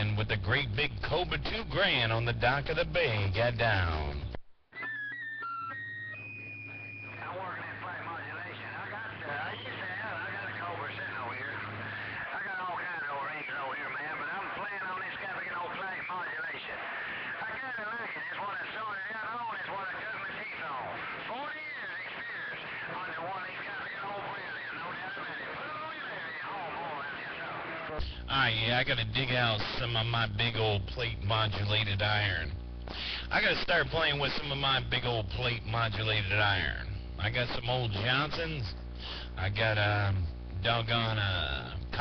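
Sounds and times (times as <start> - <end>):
man's voice over cb radio: 0.0 - 4.3, 7.1 - 42.0.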